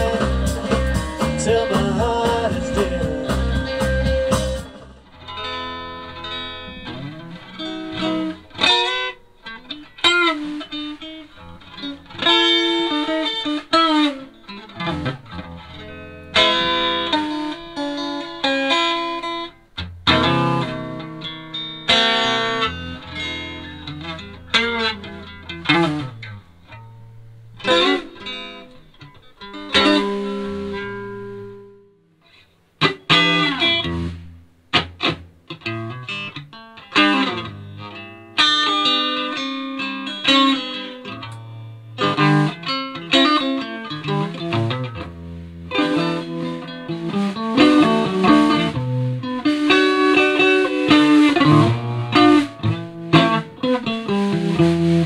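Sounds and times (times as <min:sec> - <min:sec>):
drums: 0:00.0 - 0:05.1, 0:45.7 - 0:49.7, 0:50.8 - 0:55.0
electric guitar lead with bends: 0:00.0 - 0:55.0.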